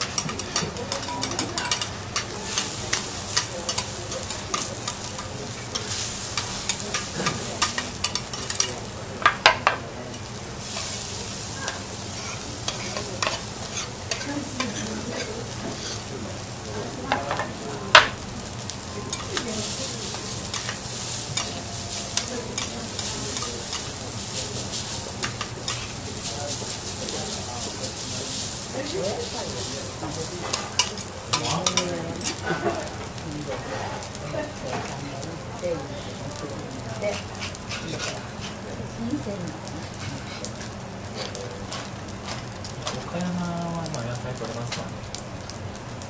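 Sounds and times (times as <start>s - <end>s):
utensils scraping a pan: 0.0s - 8.8s, 10.1s - 16.1s, 19.1s - 32.5s, 37.0s - 38.6s, 39.9s - 42.4s
food sizzling in a pan: 0.0s - 46.0s.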